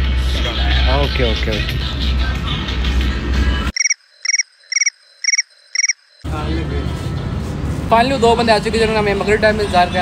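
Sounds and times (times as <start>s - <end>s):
cricket chirping sound effect: 3.7s - 6.3s.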